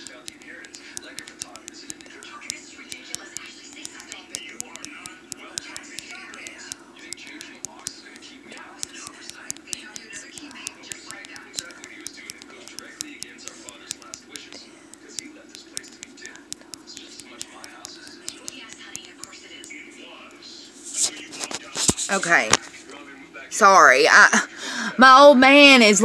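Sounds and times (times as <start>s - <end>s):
phone keyboard clicks: 0.0s - 8.0s
faint whispering: 0.0s - 23.0s
steady low hum: 0.0s - 26.0s.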